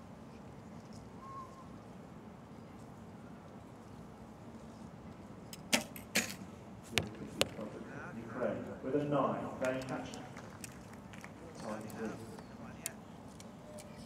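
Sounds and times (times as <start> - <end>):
low outdoor background: 0.0 - 14.0
arrows striking target: 5.7 - 7.7.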